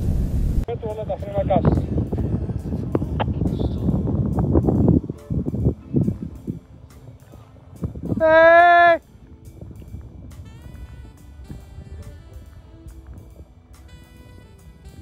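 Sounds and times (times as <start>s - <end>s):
faint background music: 0.6s - 15.0s
loud drawn-out call: 8.1s - 9.1s.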